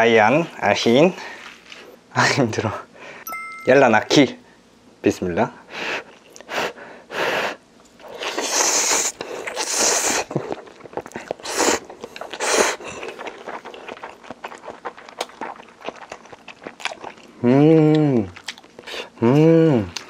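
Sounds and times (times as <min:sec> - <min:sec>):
person slurping noodles: 0:08.0 - 0:10.6
wet chewing: 0:08.0 - 0:20.0.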